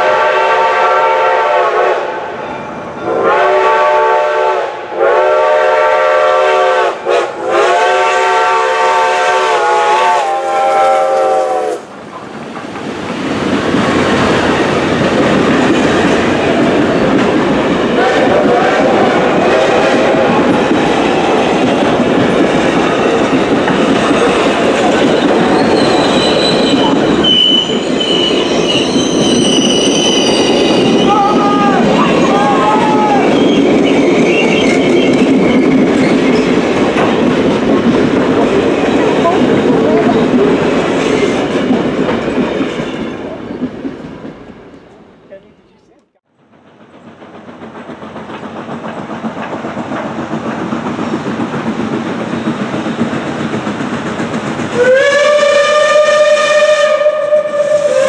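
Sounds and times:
steam locomotive whistle blasts: 0:00.0 - 0:02.2, 0:03.0 - 0:11.9, 0:18.0 - 0:20.6, 0:54.7 - 0:58.0
train rumbling past: 0:00.0 - 0:58.0
wheels clicking over rail joints: 0:12.0 - 0:18.4, 0:20.2 - 0:29.3, 0:46.5 - 0:54.9.

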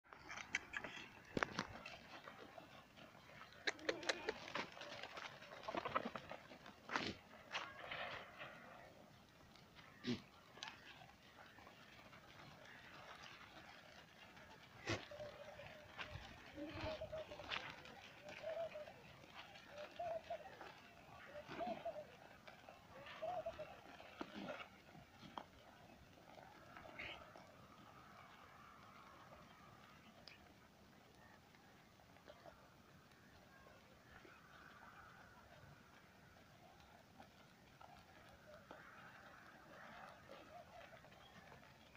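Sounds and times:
sharp hoof clicks: 0:00.1 - 0:08.6
goats shuffling: 0:00.1 - 0:41.9
dove cooing: 0:00.6 - 0:07.7, 0:09.8 - 0:30.6, 0:31.2 - 0:41.9
low animal call: 0:03.3 - 0:09.0, 0:09.8 - 0:30.4.

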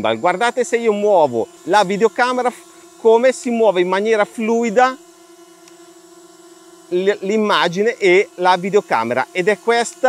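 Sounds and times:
drone propellers humming: 0:00.0 - 0:10.0.

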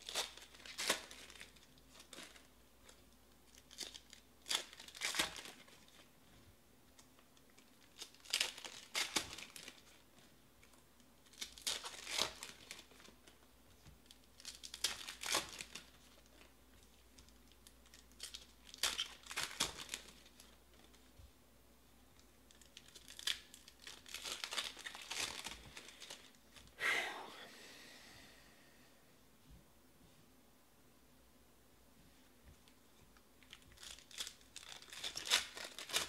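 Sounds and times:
card packs being torn open: 0:00.0 - 0:06.0, 0:07.5 - 0:10.0, 0:11.2 - 0:13.2, 0:14.1 - 0:16.5, 0:17.2 - 0:20.9, 0:22.5 - 0:26.7, 0:33.4 - 0:36.0.

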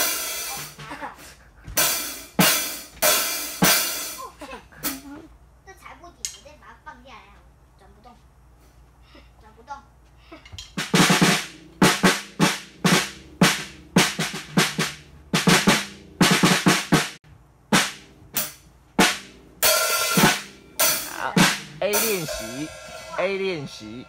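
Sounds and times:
drum kit hits: 0:01.8 - 0:04.2, 0:10.8 - 0:24.0.

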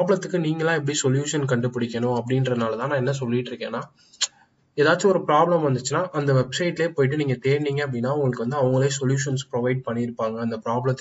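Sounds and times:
person talking: 0:00.0 - 0:03.9, 0:04.8 - 0:11.0.

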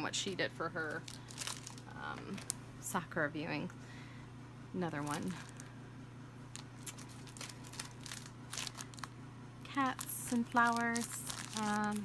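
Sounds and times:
plastic packaging crinkling: 0:00.8 - 0:02.6, 0:05.0 - 0:05.7, 0:06.5 - 0:12.0
faint crackles: 0:09.9 - 0:12.0.

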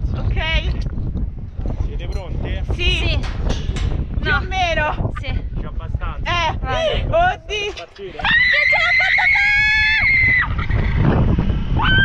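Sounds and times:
wind on microphone: 0:00.0 - 0:12.0
woman screaming: 0:08.2 - 0:10.6.

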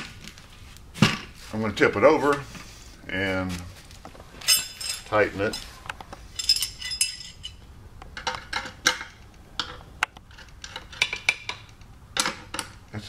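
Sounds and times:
wrench clinking on metal: 0:04.4 - 0:05.6, 0:06.3 - 0:07.6.

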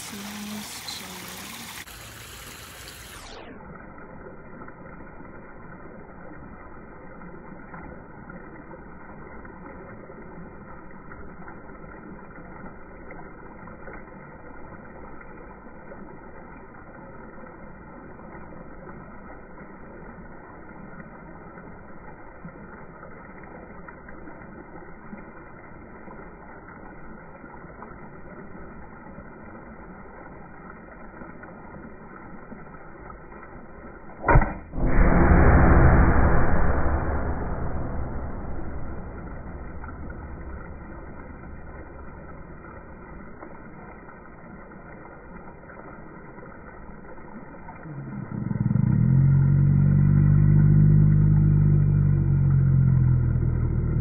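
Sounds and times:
water trickling over rocks: 0:00.0 - 0:34.8, 0:39.2 - 0:54.0.

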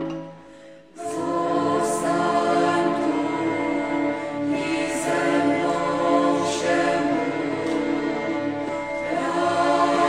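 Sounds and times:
choir singing a hymn: 0:00.9 - 0:10.0.

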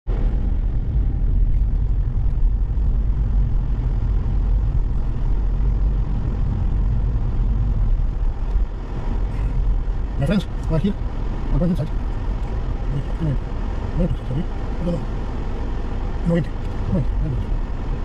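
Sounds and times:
car cabin road and engine noise: 0:00.0 - 0:18.0.

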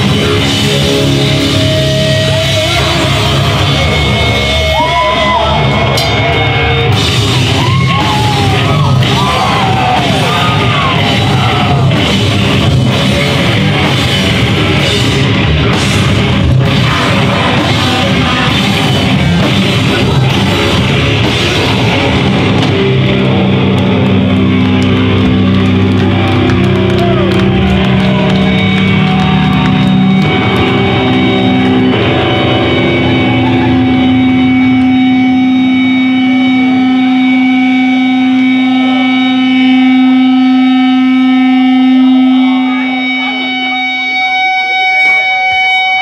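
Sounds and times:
crowd voices: 0:00.0 - 0:46.0
drums: 0:00.0 - 0:46.0
electric guitars and bass ringing: 0:00.0 - 0:46.0.

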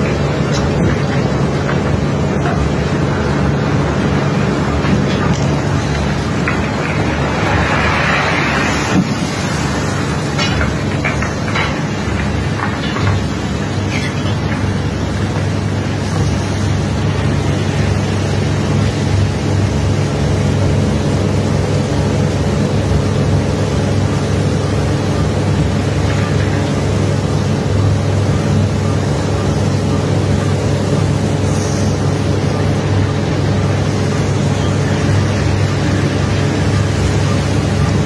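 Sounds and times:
constant rushing hiss: 0:00.0 - 0:38.0
low engine drone: 0:00.0 - 0:38.0.

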